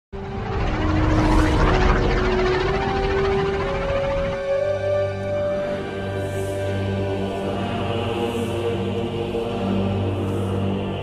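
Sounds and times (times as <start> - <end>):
film score with held notes: 0.2 - 11.0
spaceship engines: 0.2 - 11.0.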